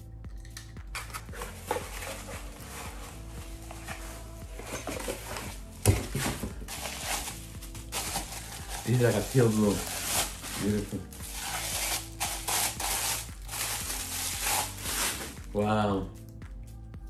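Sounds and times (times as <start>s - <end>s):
soft background music: 0.0s - 17.0s
cardboard rustling: 1.0s - 15.4s
bubble wrap crinkling: 1.0s - 15.6s
knife cutting tape: 9.8s - 15.4s.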